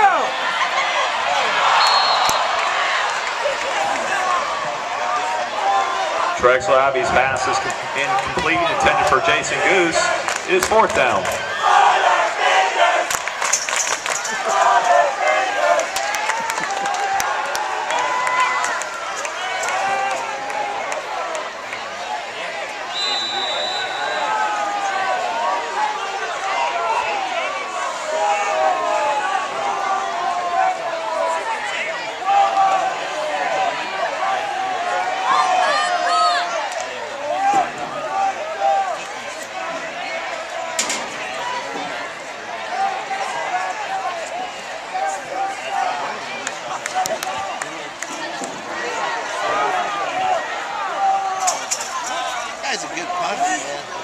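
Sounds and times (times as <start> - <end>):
crowd talking and shouting: 0.0 - 54.0.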